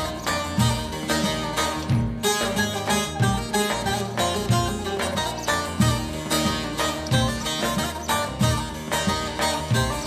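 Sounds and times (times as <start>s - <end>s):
folk dance music on plucked strings: 0.0s - 10.0s
steady low beat: 0.0s - 10.0s.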